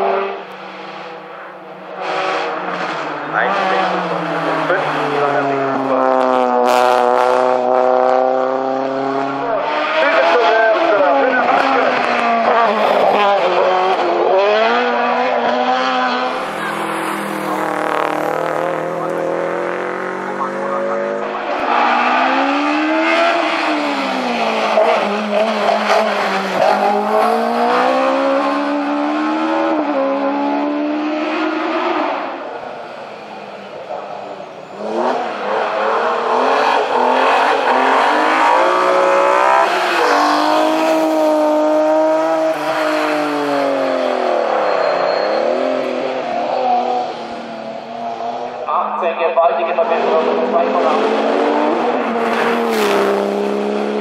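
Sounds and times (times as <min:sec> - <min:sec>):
race cars passing at full throttle: 0:00.0 - 0:54.0.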